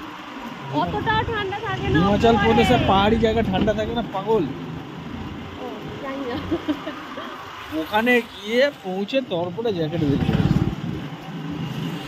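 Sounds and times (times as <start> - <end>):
motorbike engine and road rumble: 0.6 - 8.0, 9.7 - 12.0
wind rushing past microphone: 10.0 - 11.9.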